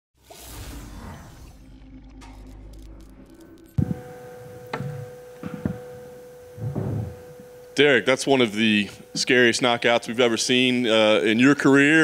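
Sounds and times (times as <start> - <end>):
high electrical hum: 0.3 - 12.0.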